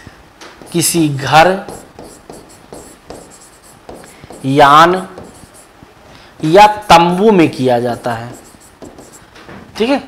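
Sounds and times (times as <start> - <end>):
chalk scratching on blackboard: 0.6 - 5.7, 6.5 - 9.3.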